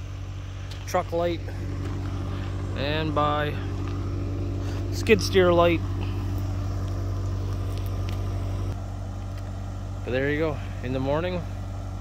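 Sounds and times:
engine idling low hum: 0.0s - 12.0s.

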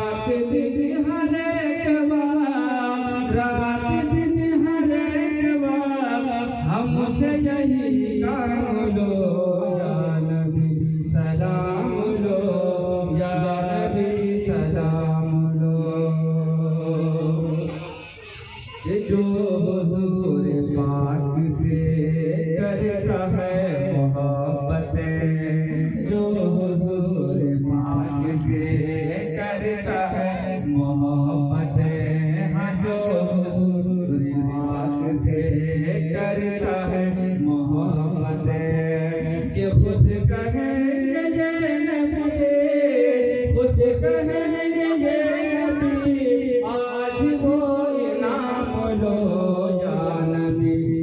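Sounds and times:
man chanting into microphone: 0.0s - 18.1s, 18.7s - 51.0s.

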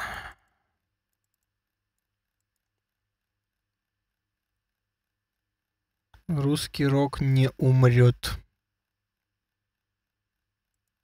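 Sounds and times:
man sighing: 0.0s - 0.6s
faint room hum: 0.0s - 11.0s
man speaking: 6.2s - 8.5s.

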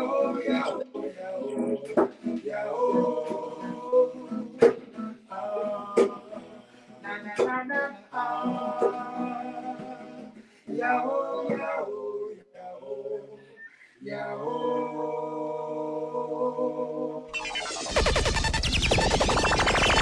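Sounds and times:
vocal harmony group singing: 0.0s - 17.6s.

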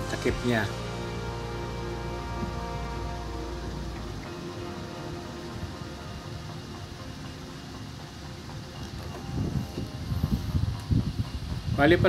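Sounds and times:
welding arc crackling hiss: 0.0s - 12.0s.

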